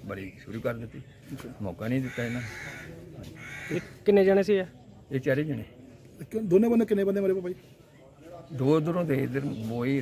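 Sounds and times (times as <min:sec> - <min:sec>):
bird raspy calls: 0:01.9 - 0:04.2.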